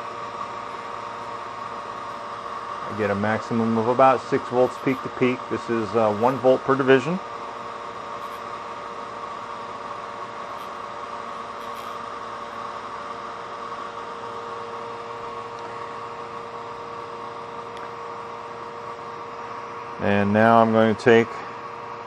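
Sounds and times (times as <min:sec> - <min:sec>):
motor spinning with steady hum: 0:00.0 - 0:22.0.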